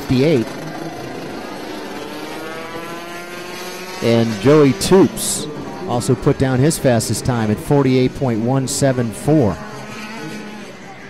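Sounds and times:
two-stroke kart engine running: 0.0 - 11.0.

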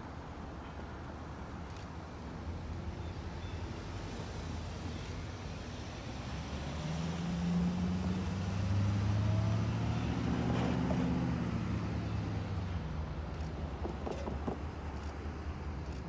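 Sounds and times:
cars passing close by: 3.8 - 16.0.

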